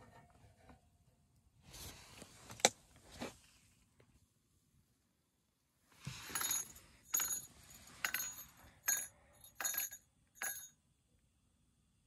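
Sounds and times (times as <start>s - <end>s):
reel jingling metallic ringing: 6.3s - 10.7s.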